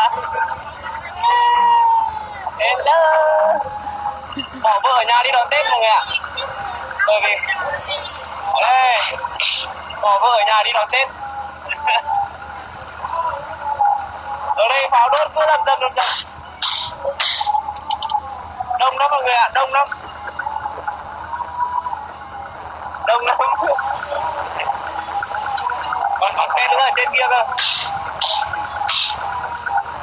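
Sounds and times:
quiet voices: 0.0 - 30.0
vehicle rumble: 0.0 - 30.0
laughter: 4.4 - 4.8.

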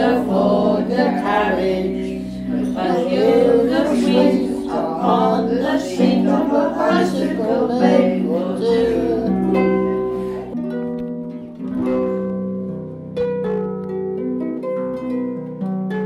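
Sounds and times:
voices singing: 0.0 - 10.6
plucked harp: 0.0 - 16.0.

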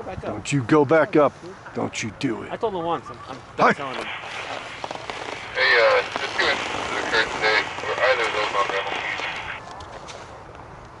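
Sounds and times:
steady hiss: 3.6 - 9.6.

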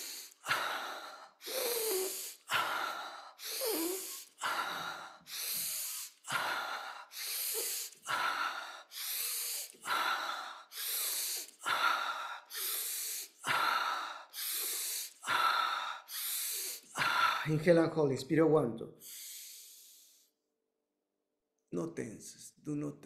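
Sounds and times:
man breathing hard and fast: 0.0 - 17.7, 18.9 - 20.4.

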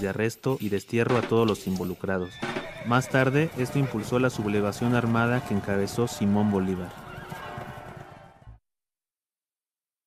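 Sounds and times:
horse whinnying: 2.2 - 4.4.

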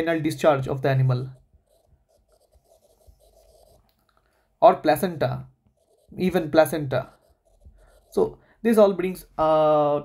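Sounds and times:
stylus scratching on glass screen: 0.0 - 4.1, 4.9 - 9.2.

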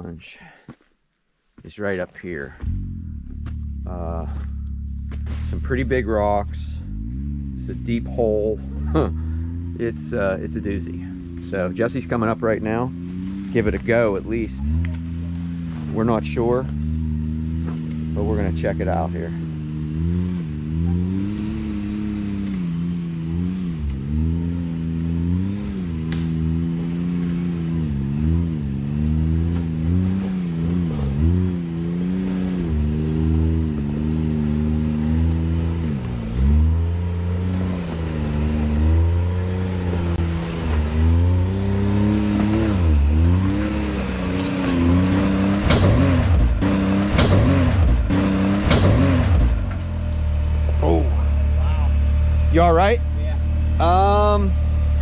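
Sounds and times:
engine revving: 2.2 - 55.0.

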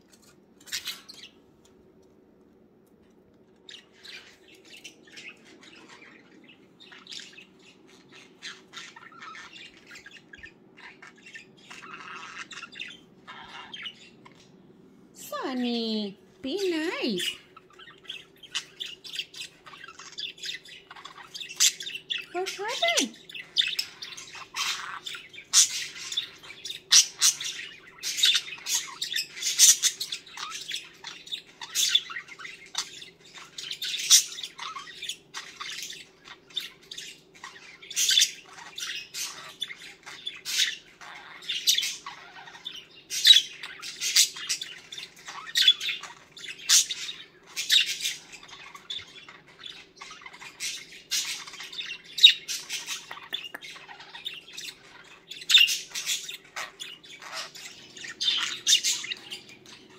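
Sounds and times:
budgerigar chirps and squawks: 3.7 - 14.5, 16.9 - 59.9.

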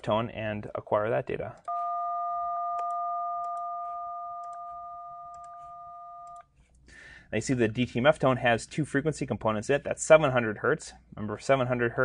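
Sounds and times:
telephone dial tone: 1.7 - 6.4.

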